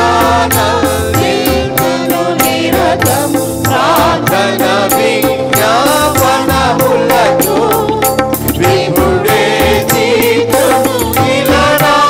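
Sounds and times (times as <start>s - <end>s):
choir singing: 0.0s - 12.0s
tabla beat: 0.0s - 12.0s
woman singing lead: 0.0s - 12.0s.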